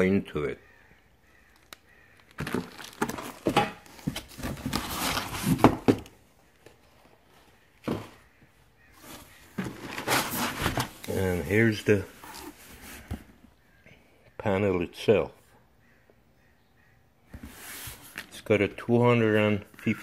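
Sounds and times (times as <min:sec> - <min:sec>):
plastic wrapping crinkling: 0:01.5 - 0:05.7
cardboard box flaps rustling: 0:09.0 - 0:11.0.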